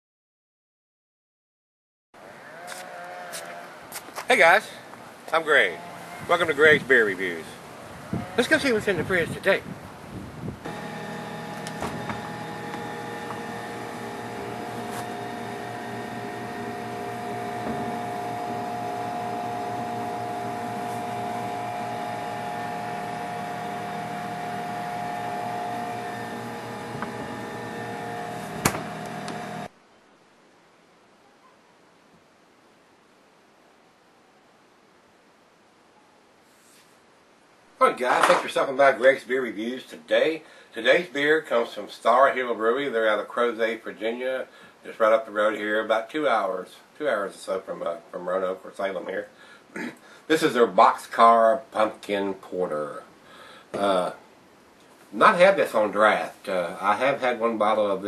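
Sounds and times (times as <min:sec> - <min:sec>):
distant engine running: 0:10.7 - 0:29.7
refrigerator humming: 0:10.7 - 0:29.7.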